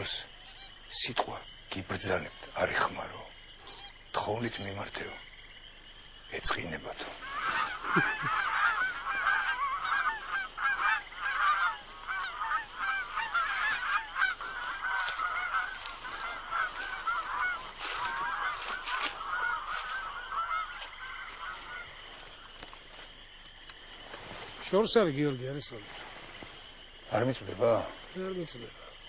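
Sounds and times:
flock of birds calling: 0.0s - 29.0s.

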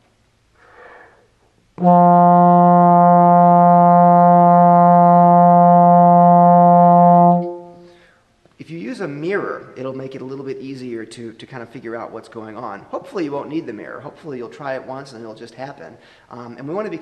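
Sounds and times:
breath intake: 0.6s - 1.3s
trombone long low note: 1.8s - 7.9s.

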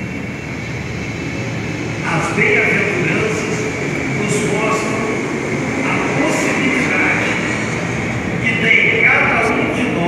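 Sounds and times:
steady rumbling noise: 0.0s - 10.0s
man preaching over loudspeakers: 2.0s - 5.2s, 5.8s - 7.5s, 8.4s - 10.0s.

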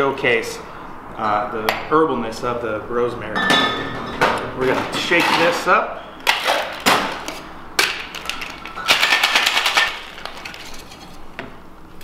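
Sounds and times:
ice rattling in cocktail shaker: 8.0s - 11.0s.

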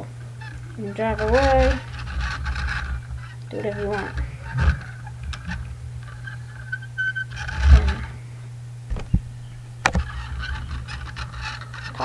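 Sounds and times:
toy wheels rolling and scraping: 0.0s - 8.3s, 8.9s - 12.0s
steady low hum: 0.0s - 12.0s
sharp knocks: 8.9s - 10.7s.

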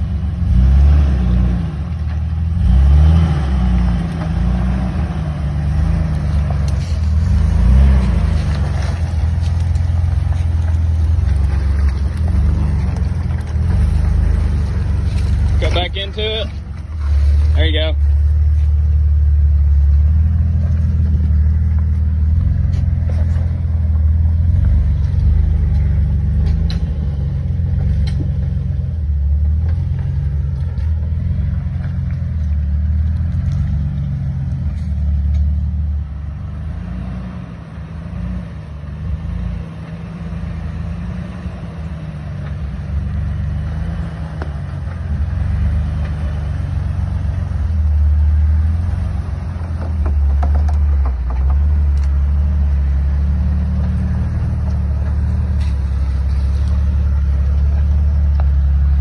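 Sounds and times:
off-road vehicle engine rumbling: 0.0s - 59.0s.

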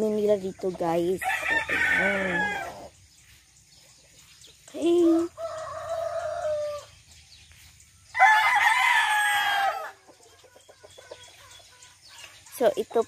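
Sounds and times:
rooster crowing: 1.2s - 2.9s, 5.2s - 6.9s, 8.1s - 10.0s.

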